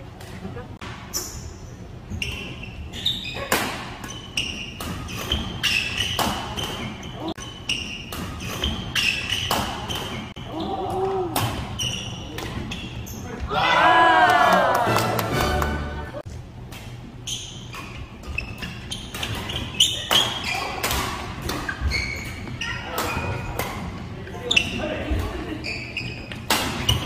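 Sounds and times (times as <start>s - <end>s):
shoes squeaking on wooden floor: 21.6s - 23.5s, 24.3s - 27.0s.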